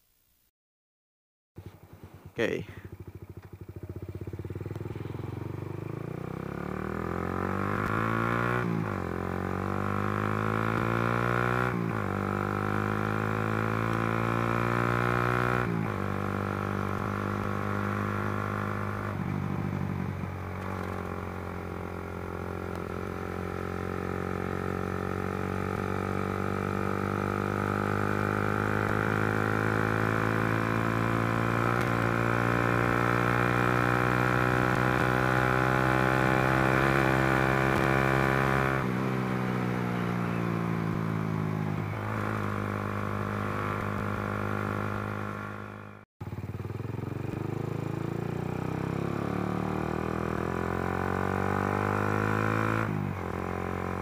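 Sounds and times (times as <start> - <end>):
motorcycle engine revving: 1.6 - 54.0.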